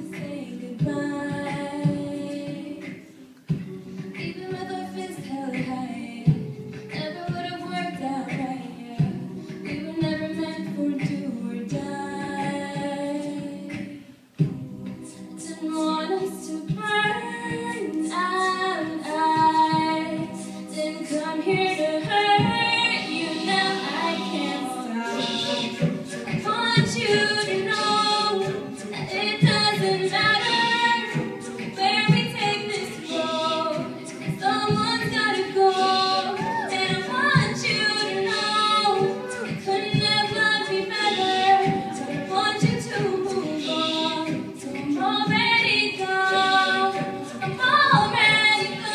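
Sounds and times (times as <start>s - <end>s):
backing vocal chords: 0.0s - 48.9s
vocal percussion: 0.0s - 48.9s
woman singing lead: 0.0s - 48.9s.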